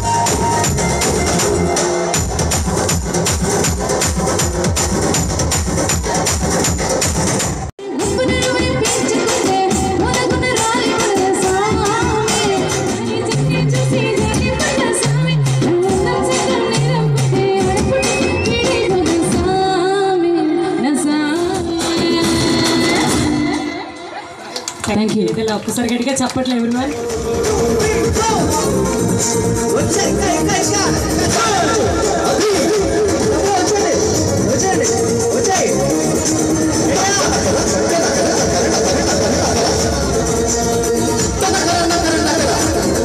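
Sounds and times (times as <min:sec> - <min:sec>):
loud music with fast beat: 0:00.0 - 0:19.2, 0:24.7 - 0:43.0.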